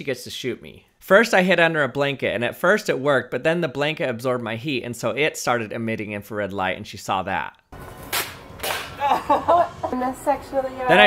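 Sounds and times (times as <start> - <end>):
man laughing: 9.0 - 10.0.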